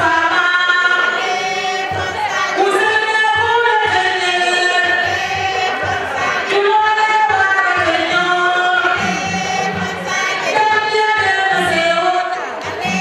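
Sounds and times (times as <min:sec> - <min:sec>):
low repeating beat: 0:00.0 - 0:13.0
woman singing into a microphone: 0:00.0 - 0:13.0
women singing in chorus: 0:00.0 - 0:13.0.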